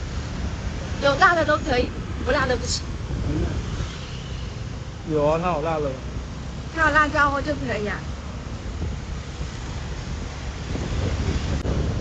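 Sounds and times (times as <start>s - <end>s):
wind buffeting microphone: 0.0s - 3.9s, 6.3s - 12.0s
traffic noise: 0.0s - 12.0s.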